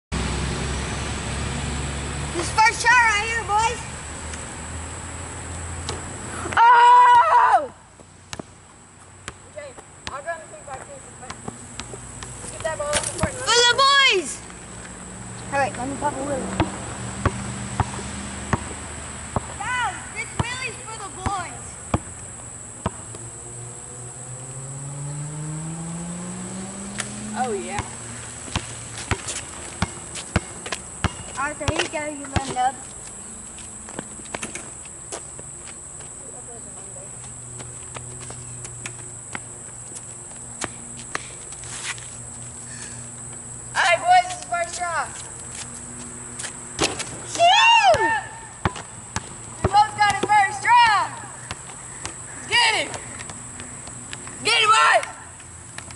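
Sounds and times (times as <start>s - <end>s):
truck engine rumble passing: 0.1s - 2.8s, 21.7s - 31.0s
basketball bouncing on asphalt: 5.5s - 23.6s, 26.6s - 36.2s, 36.8s - 42.4s, 43.1s - 55.9s.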